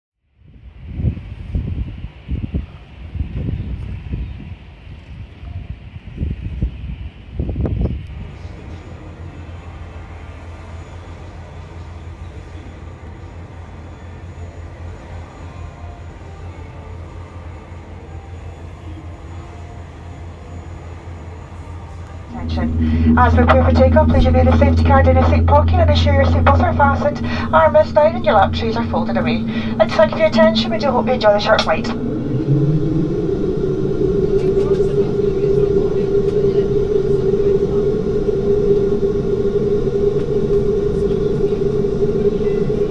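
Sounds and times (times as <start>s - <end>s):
wind gusting on microphone: 0.4s - 8.7s, 22.3s - 42.9s
low mechanical drone: 22.1s - 42.9s
turboprop engine starting up: 22.3s - 42.9s.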